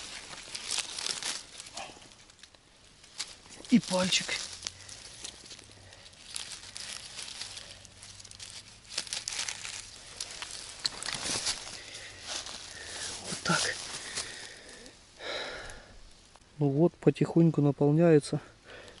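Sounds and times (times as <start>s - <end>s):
dry grass and leaves rustling: 0.0s - 19.0s.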